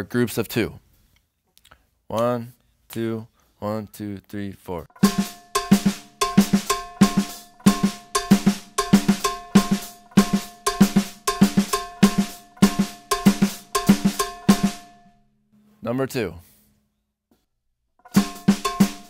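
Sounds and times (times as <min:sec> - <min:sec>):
drum kit playing latin pattern: 0:05.0 - 0:15.0, 0:18.1 - 0:19.0.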